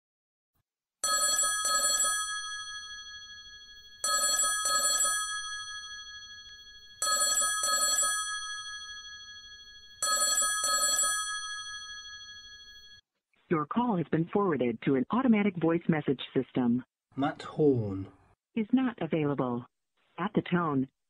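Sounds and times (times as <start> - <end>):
telephone ringing: 1.0 - 13.0.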